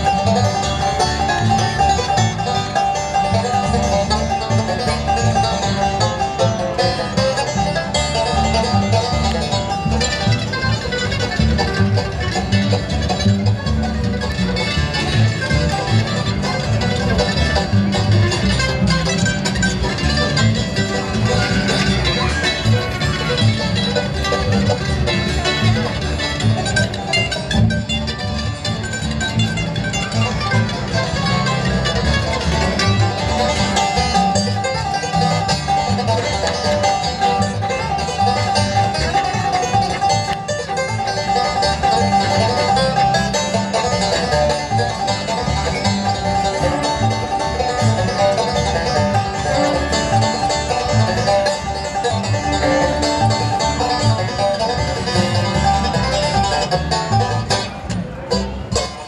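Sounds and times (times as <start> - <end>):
acoustic guitar: 0.0 - 59.0
banjo: 0.0 - 59.0
mandolin: 0.0 - 59.0
upright bass: 0.0 - 59.0.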